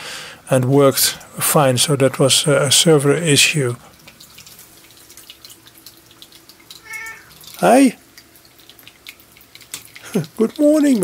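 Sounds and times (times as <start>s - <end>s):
cat meowing: 6.8s - 7.4s.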